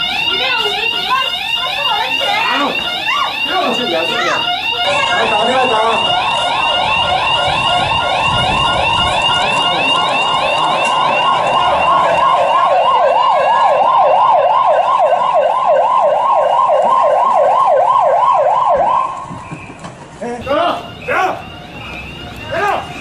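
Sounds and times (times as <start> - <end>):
electronic alarm siren wailing: 0.0 - 19.3, 20.4 - 23.0.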